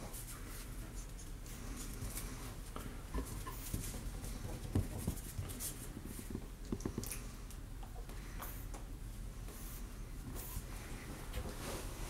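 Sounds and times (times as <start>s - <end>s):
puppies scuffling on carpet: 0.0s - 6.5s, 9.5s - 12.0s.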